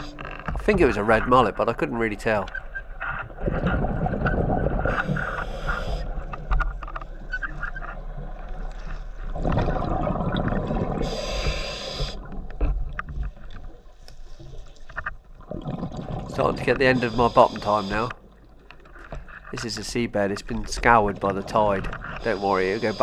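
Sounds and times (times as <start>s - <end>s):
exhaled bubbles rumbling underwater: 0.0s - 19.3s
diving regulator hiss: 4.9s - 6.1s, 11.0s - 12.2s, 16.7s - 18.2s, 22.2s - 23.0s.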